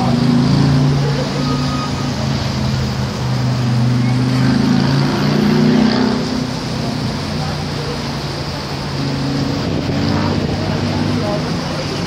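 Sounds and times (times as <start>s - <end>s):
city traffic: 0.0s - 12.0s
large vehicle engine droning: 0.0s - 12.0s.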